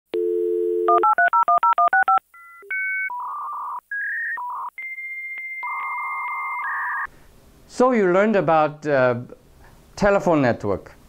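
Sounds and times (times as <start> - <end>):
touch-tone digits dialed: 0.2 - 3.4
telephone dial tone: 0.2 - 3.6
dial-up modem handshake tones: 0.2 - 7.1.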